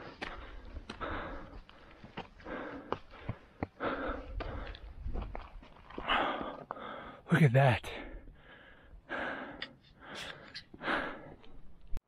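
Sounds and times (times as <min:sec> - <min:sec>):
footsteps on stone and gravel: 0:00.0 - 0:07.0
hard breathing: 0:00.0 - 0:07.3, 0:07.9 - 0:12.0.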